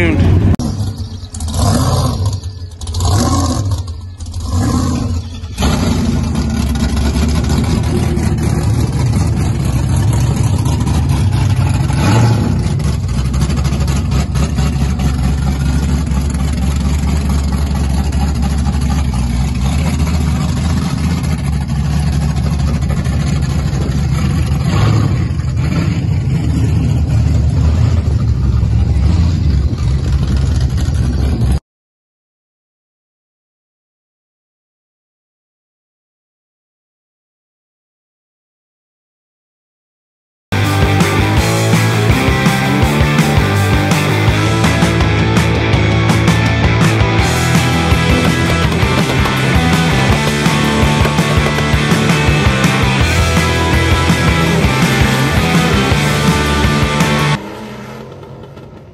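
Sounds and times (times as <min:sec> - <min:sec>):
hot-rod engines revving and rumbling: 0:00.0 - 0:31.6, 0:40.5 - 0:58.9.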